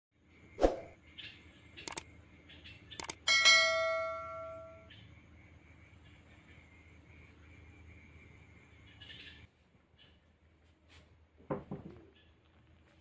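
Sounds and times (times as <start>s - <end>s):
sharp clicks: 1.8s - 2.1s, 2.9s - 3.2s
bell-like chime: 3.3s - 4.9s.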